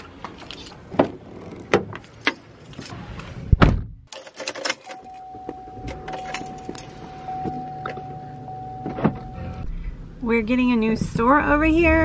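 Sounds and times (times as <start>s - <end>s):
car engine starting and running: 4.4s - 12.0s
steady high tone: 5.0s - 9.7s.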